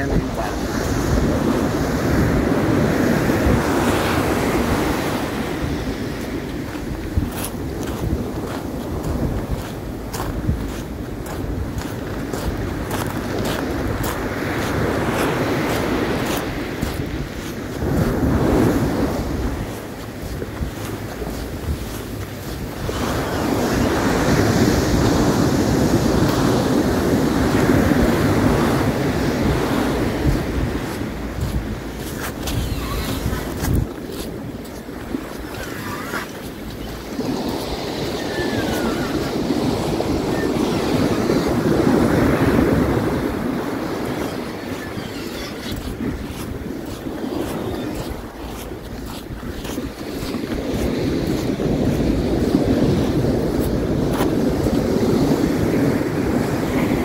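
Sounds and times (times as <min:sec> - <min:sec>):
ocean surf washing up beach: 0:00.0 - 0:57.0
wind buffeting microphone: 0:00.0 - 0:57.0.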